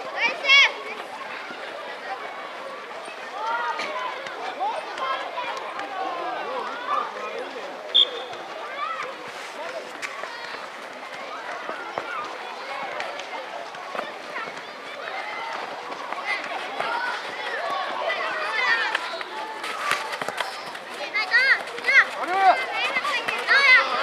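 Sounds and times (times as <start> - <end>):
children shouting: 0.0 - 7.5, 10.2 - 24.0.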